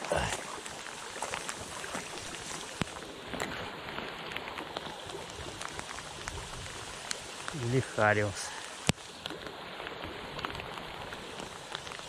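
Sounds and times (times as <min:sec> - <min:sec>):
rain falling on river and leaves: 0:00.0 - 0:12.0.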